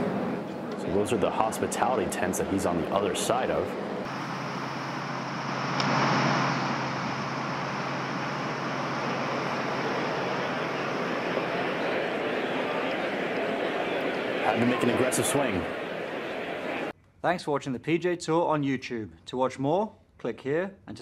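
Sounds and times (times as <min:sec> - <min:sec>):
crowd murmur: 0:07.6 - 0:16.9.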